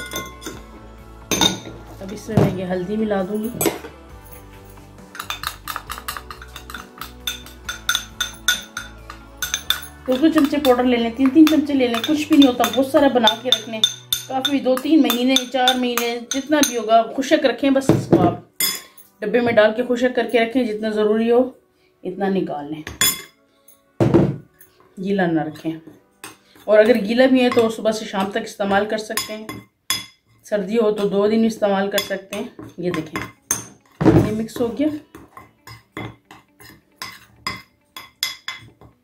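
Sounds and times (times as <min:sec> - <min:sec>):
spoon clinking on ceramic bowl: 0:00.0 - 0:00.6, 0:01.3 - 0:02.6, 0:03.4 - 0:16.9, 0:22.9 - 0:23.4, 0:25.9 - 0:30.4, 0:32.0 - 0:38.9.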